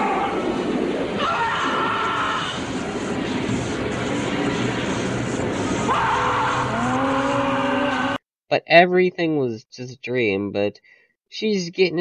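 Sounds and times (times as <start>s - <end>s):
horror soundtrack music: 0.0s - 8.2s.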